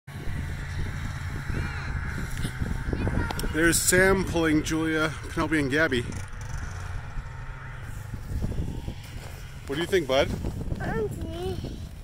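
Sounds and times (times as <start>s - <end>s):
distant snowmobile engine running: 0.1s - 12.0s.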